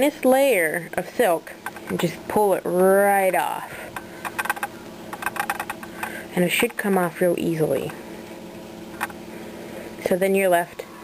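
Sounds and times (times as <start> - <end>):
faint steady hum: 0.0 - 11.0
quick irregular clicks: 3.9 - 6.2.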